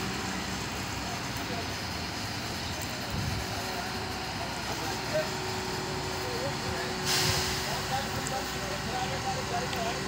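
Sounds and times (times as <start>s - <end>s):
crane engine running: 0.0s - 10.0s
compressed air hiss: 7.0s - 8.0s.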